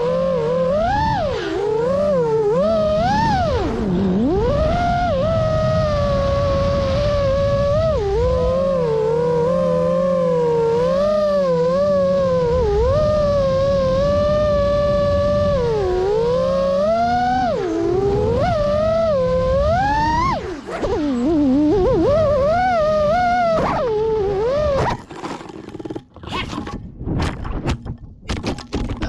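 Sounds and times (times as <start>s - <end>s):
quadcopter motors whining: 0.0s - 25.9s.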